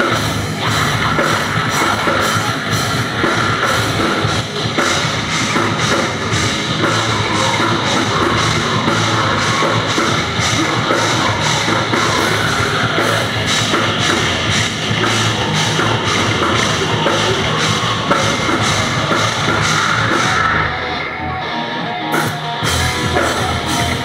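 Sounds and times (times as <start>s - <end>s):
heavy rock band playing: 0.0s - 24.0s.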